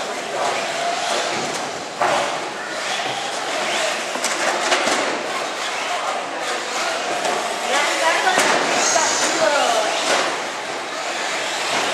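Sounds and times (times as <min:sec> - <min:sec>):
electric rc truck motors whining: 0:00.1 - 0:04.2, 0:05.2 - 0:08.0, 0:08.9 - 0:11.9.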